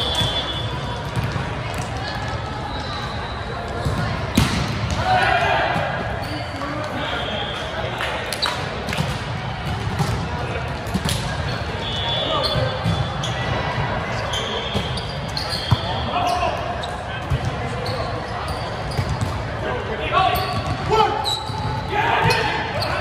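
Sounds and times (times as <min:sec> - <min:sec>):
sneakers squeaking on floor: 0:00.0 - 0:04.6, 0:06.0 - 0:07.6, 0:10.9 - 0:19.5, 0:20.2 - 0:23.0.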